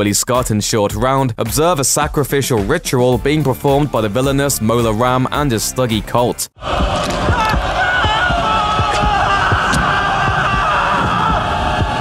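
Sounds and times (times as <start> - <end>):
crowd chanting: 6.6 - 12.0
deep drums beating: 6.6 - 12.0.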